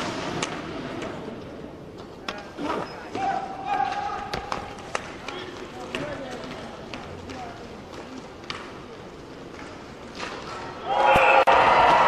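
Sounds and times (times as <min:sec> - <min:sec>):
hockey sticks and puck clacking: 0:00.0 - 0:11.4
players shouting: 0:03.1 - 0:04.5, 0:10.8 - 0:12.0.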